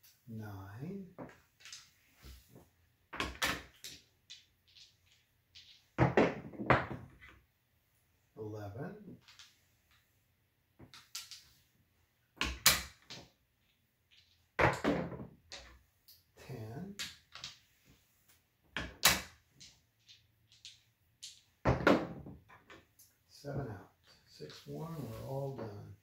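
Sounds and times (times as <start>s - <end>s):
dice and chips clacking: 1.2s - 2.0s, 3.1s - 7.3s, 9.1s - 10.0s, 10.8s - 11.6s, 12.4s - 16.3s, 16.9s - 17.8s, 18.8s - 23.1s
dice tumbling across table: 1.2s - 7.4s, 9.1s - 10.0s, 10.8s - 11.6s, 12.3s - 16.2s, 17.0s - 17.8s, 18.7s - 23.0s.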